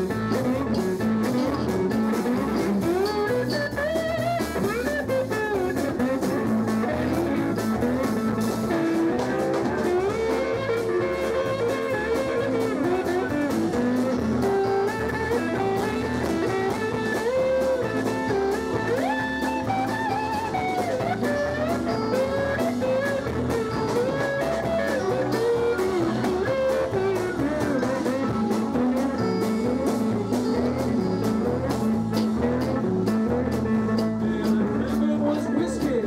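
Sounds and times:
blues band playing: 0:00.0 - 0:36.0
electric guitar lead: 0:00.0 - 0:36.0.

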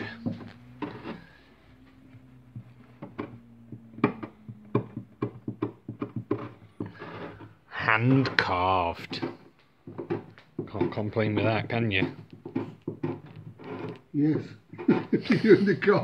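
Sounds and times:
chisel carving wood: 0:00.0 - 0:15.8
faint low hum: 0:00.0 - 0:16.0.

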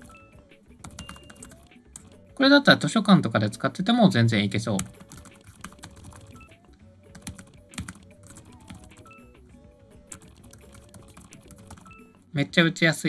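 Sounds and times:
keyboard typing: 0:00.0 - 0:02.5, 0:04.7 - 0:09.4, 0:10.0 - 0:12.1
faint background music: 0:00.0 - 0:13.0.

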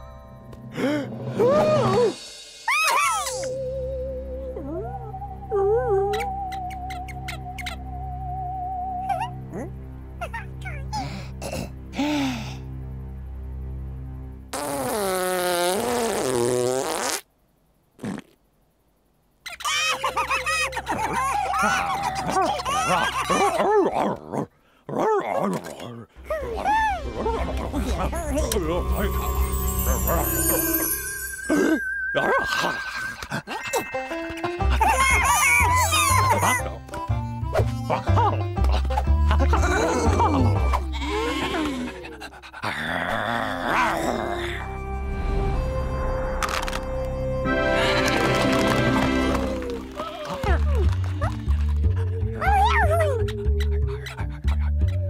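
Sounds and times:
cartoon music with low bass: 0:00.0 - 0:15.6, 0:26.2 - 0:42.3, 0:42.9 - 0:55.0
cartoon alien gibberish wail: 0:19.5 - 0:24.4, 0:29.8 - 0:34.0, 0:34.6 - 0:36.8, 0:37.7 - 0:44.8, 0:49.2 - 0:55.0.

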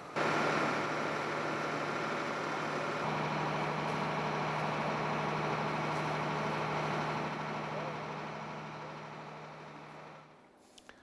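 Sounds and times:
fire truck engine running: 0:00.0 - 0:10.5.

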